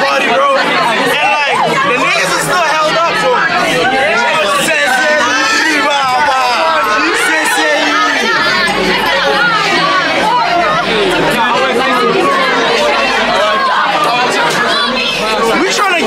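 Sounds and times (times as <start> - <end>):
crowd babble: 0.0 - 16.0.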